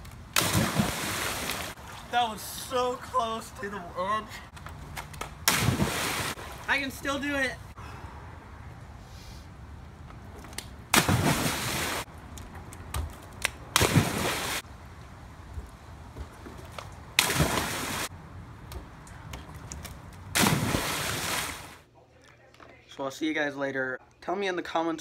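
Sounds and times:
person splashing into pool: 0.4s - 2.0s, 5.4s - 6.7s, 10.9s - 12.1s, 13.8s - 14.6s, 17.2s - 18.1s, 20.3s - 21.8s.

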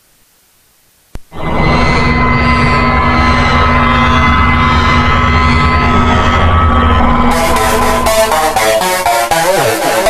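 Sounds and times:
faint high synth sweep: 1.3s - 10.0s
synth drone over deep bass: 1.3s - 10.0s.

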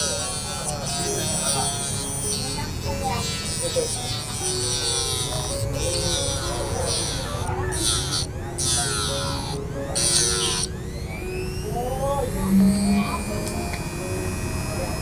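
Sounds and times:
background music: 0.0s - 15.0s
rotary tool grinding metal: 0.0s - 15.0s.

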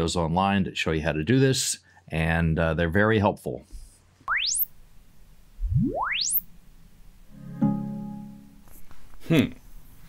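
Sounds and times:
sine sweep test tones: 4.3s - 4.7s, 5.6s - 6.5s.

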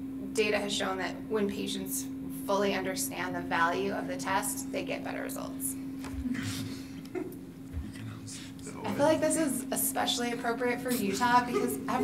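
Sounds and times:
steady low hum: 0.0s - 12.0s
person speaking: 7.7s - 9.7s.

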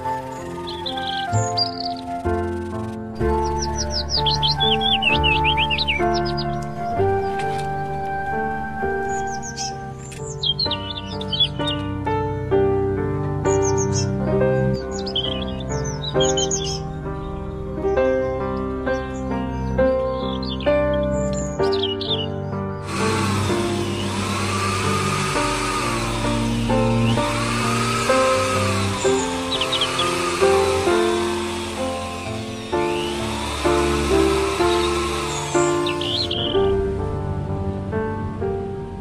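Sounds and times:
electric drill whining: 0.0s - 10.2s, 22.8s - 36.7s
background music: 0.0s - 39.0s.

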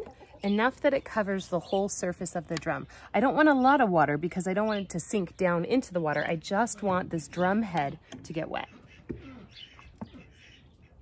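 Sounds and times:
chickens clucking: 0.0s - 1.0s, 6.6s - 11.0s.

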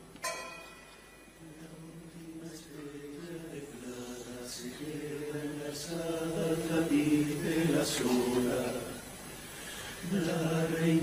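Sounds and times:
male chorus singing: 1.4s - 9.3s, 10.0s - 11.0s.

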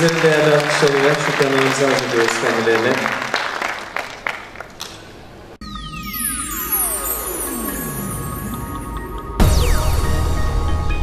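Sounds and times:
applause: 0.0s - 5.0s
electronic music with descending tone: 5.6s - 11.0s.

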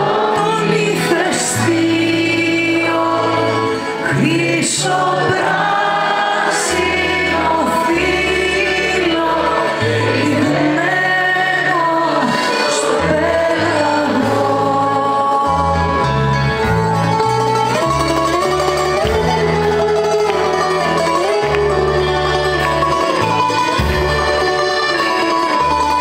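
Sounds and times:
woman singing through pa: 0.0s - 16.1s
small band playing: 0.0s - 26.0s
bass line: 12.9s - 26.0s.

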